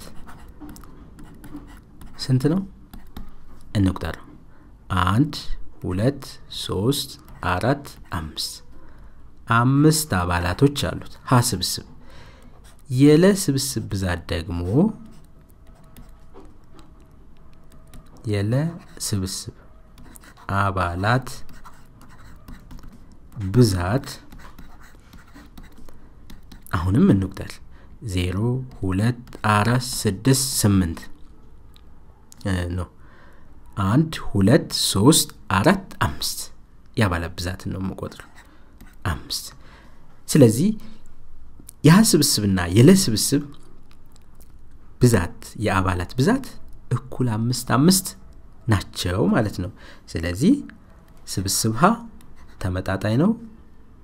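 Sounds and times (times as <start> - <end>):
stylus scratching on tablet: 0.0 - 3.5, 6.9 - 8.6, 12.5 - 27.6, 28.6 - 30.6, 38.0 - 39.4, 52.2 - 52.8.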